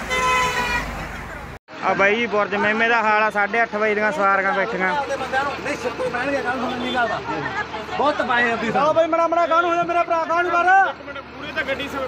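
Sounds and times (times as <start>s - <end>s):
vehicle horn blast: 0.0s - 1.0s
voices talking: 1.0s - 12.0s.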